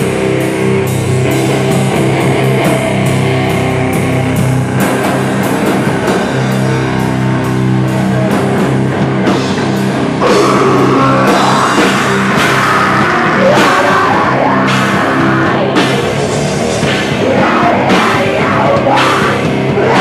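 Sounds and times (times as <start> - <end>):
distorted electric guitar chords: 0.0 - 20.0
drum kit and cymbals: 0.0 - 20.0.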